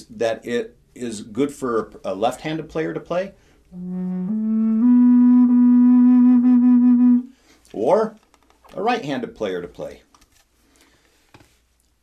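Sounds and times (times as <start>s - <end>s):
flute holding low note: 3.8s - 7.3s.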